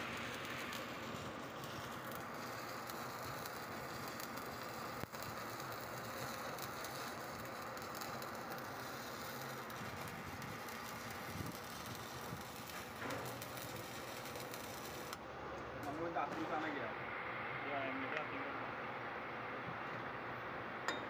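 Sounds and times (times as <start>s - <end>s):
electric arc crackling hiss: 0.0s - 15.2s.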